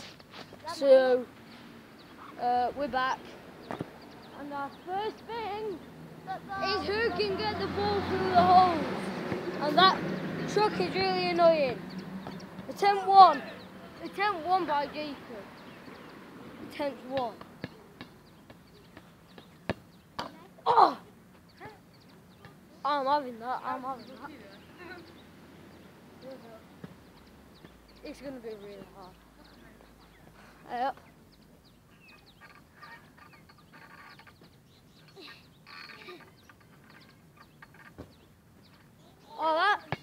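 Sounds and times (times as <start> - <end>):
small birds chirping: 0.0 - 40.0.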